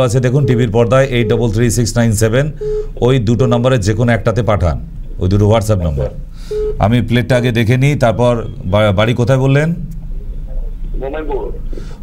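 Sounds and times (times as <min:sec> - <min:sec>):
telephone beep: 0:00.0 - 0:01.8, 0:06.5 - 0:06.8
person talking on phone call: 0:10.2 - 0:11.8.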